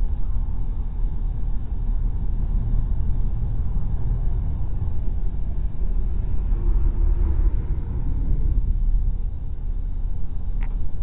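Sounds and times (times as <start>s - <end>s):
road and engine rumble: 0.0s - 11.0s.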